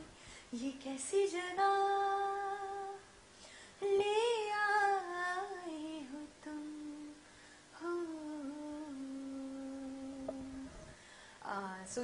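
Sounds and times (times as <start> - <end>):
woman humming unaccompanied: 7.8 - 11.0.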